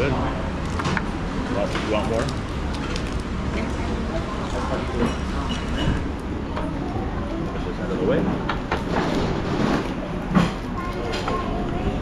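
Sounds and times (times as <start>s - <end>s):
restaurant din: 0.0s - 12.0s.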